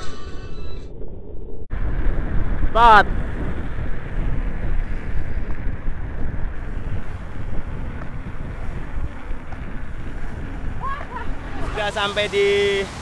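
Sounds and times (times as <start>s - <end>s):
wind buffeting microphone: 0.9s - 13.0s.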